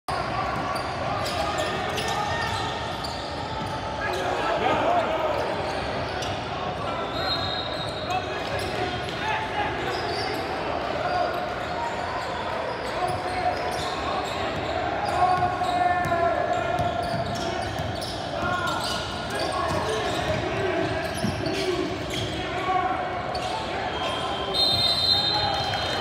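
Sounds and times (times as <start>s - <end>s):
voices in echoing gym: 0.1s - 26.0s.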